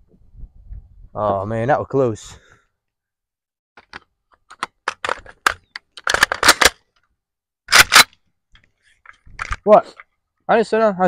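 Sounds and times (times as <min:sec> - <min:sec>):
sharp clicks and knocks: 0:03.8 - 0:07.1.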